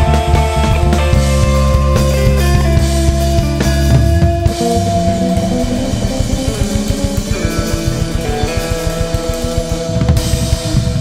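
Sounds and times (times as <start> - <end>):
drum kit: 0.0 - 11.0
electric bass: 0.0 - 11.0
electric guitar: 0.0 - 11.0.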